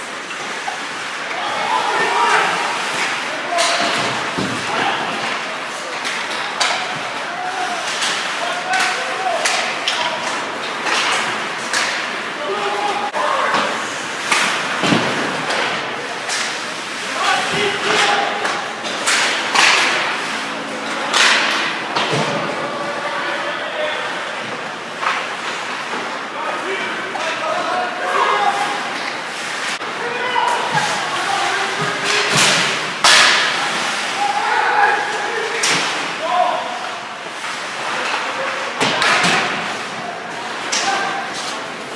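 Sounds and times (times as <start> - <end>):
sticks and puck clacking: 0.1 - 22.6, 30.4 - 36.1, 37.3 - 41.9
people shouting: 1.3 - 5.5, 6.4 - 10.3, 12.4 - 13.8, 33.1 - 36.8.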